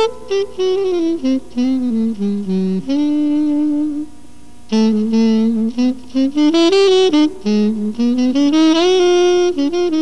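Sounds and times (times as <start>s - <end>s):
faint jazz band: 0.0s - 10.0s
tenor saxophone long notes: 0.0s - 10.0s.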